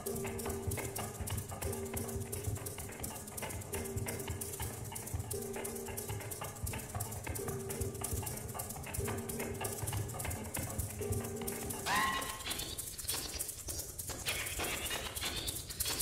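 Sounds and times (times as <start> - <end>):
hand percussion clicks and taps: 0.0 - 16.0
struck metallic tone: 11.8 - 12.8.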